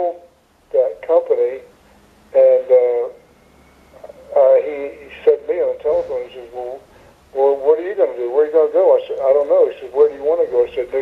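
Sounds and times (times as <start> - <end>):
person talking over radio: 7.4 - 11.0.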